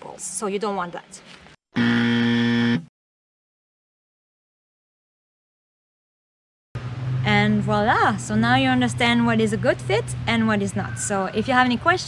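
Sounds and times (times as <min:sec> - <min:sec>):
wrong answer buzzer: 0:01.8 - 0:02.9.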